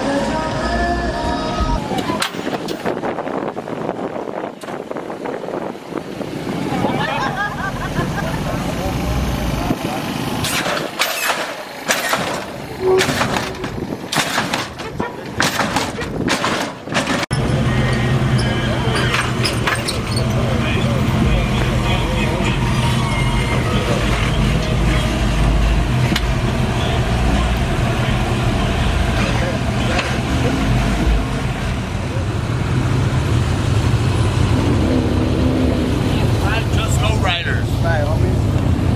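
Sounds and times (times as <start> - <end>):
car engine low rumble: 0.0 - 38.9
car engine running: 23.4 - 38.9.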